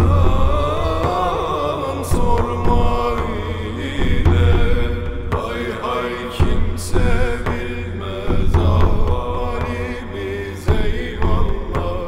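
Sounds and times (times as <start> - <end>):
man singing a hymn: 0.0 - 12.0.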